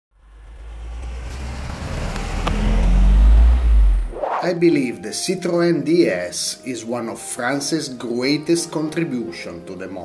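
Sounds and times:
car speeding past: 0.2 - 4.6.

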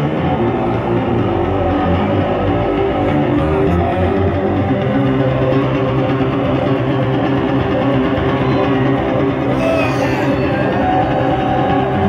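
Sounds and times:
electric bass guitar solo: 0.0 - 12.0.

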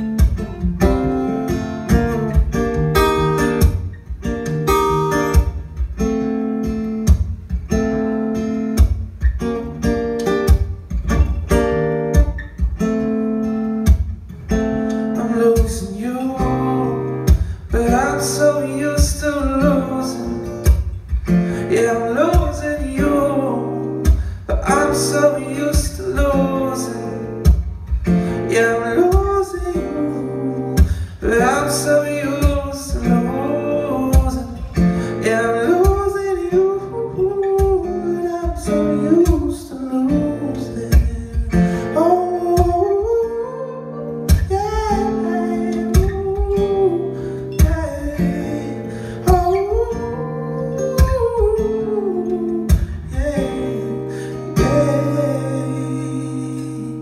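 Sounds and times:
acoustic guitar: 0.0 - 57.0
percussive beat: 0.1 - 6.2, 7.0 - 8.1, 8.7 - 13.1, 13.8 - 14.3, 27.4 - 28.2, 44.3 - 45.1, 45.9 - 46.8, 52.7 - 53.4.

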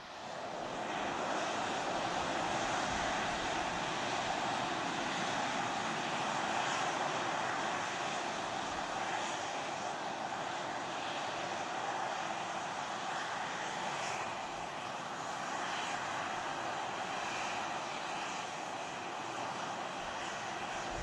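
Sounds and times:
steady rushing noise: 0.0 - 21.0.

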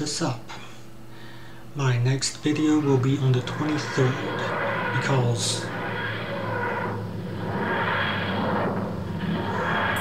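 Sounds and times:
grinding whoosh: 2.3 - 10.0.

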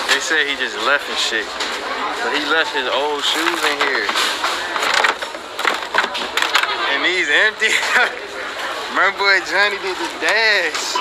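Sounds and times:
plastic basket rustling and knocks: 3.3 - 6.7.

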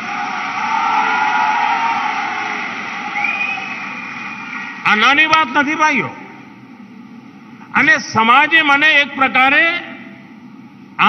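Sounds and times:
large crowd applauding: 0.0 - 4.9.

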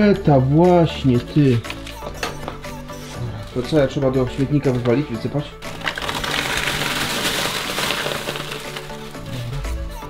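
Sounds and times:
background music: 0.0 - 10.0
litter pouring into bin bag: 5.6 - 9.4.

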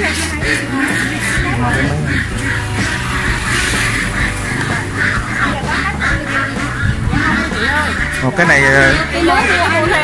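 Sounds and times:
background music with bass line: 0.0 - 10.0
ducks quacking: 0.0 - 10.0.

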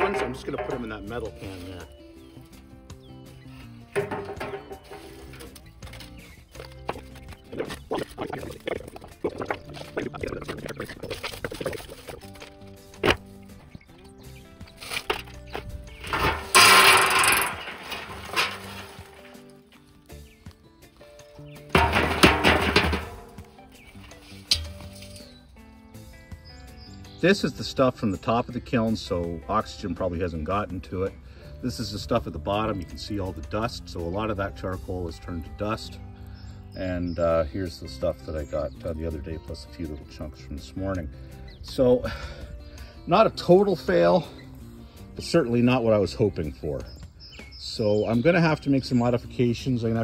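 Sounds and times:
charcoal clattering into steel drum: 0.0 - 1.9, 3.9 - 7.0, 14.8 - 19.7, 21.6 - 25.4
charcoal lumps clinking: 0.0 - 2.7, 3.4 - 25.5
background music: 0.0 - 50.0.

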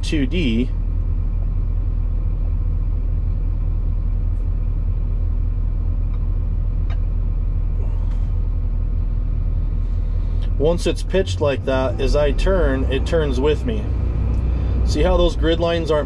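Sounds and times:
diesel engine idling: 0.0 - 16.0.

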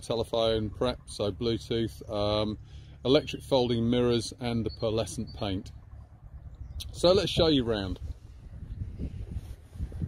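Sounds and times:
wind rumble on microphone: 4.6 - 10.0.

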